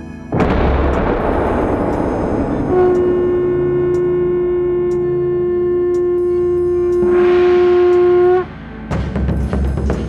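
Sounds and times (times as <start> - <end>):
blast rumble: 0.4 - 8.0
conch shell blown note: 0.6 - 8.6.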